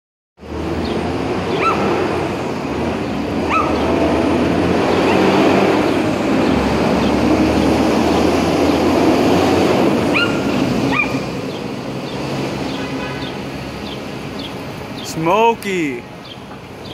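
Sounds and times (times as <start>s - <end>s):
city street noise: 0.4s - 16.9s
small dog yapping: 1.6s - 1.9s, 3.5s - 3.8s, 10.1s - 11.2s.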